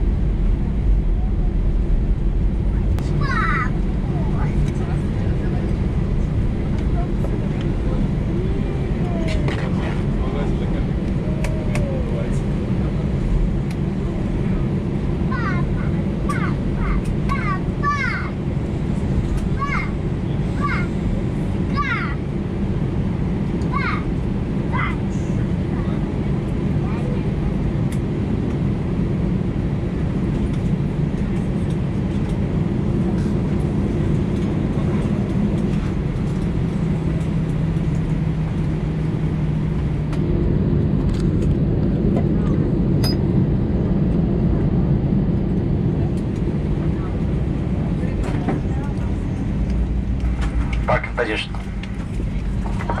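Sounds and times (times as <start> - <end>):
aircraft cabin low drone: 0.0 - 53.0
faint passenger voices: 0.6 - 53.0.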